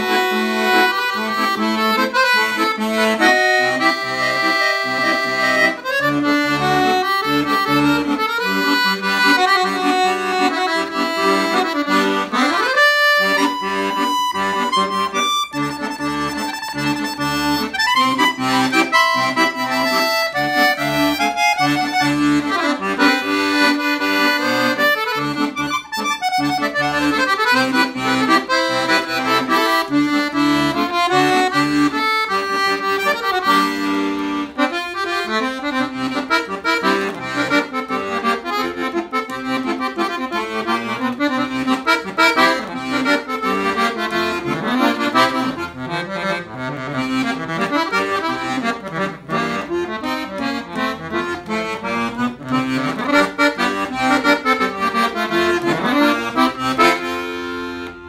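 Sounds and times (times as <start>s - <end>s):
piano accordion playing: 0.0s - 58.0s.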